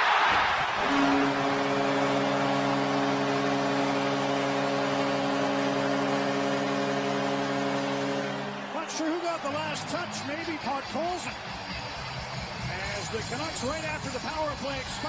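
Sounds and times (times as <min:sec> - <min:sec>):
crowd cheering: 0:00.0 - 0:15.0
goal horn blast: 0:00.4 - 0:11.0.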